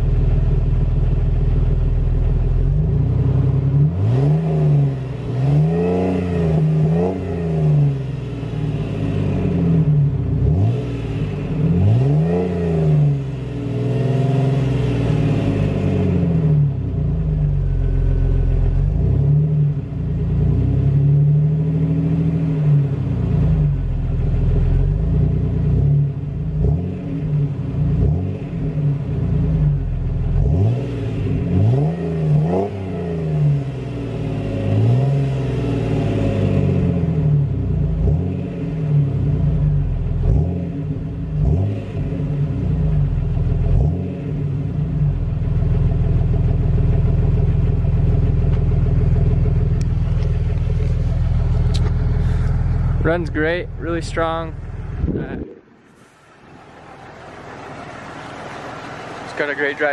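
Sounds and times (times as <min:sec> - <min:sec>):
car engine revving: 0:00.0 - 0:59.9.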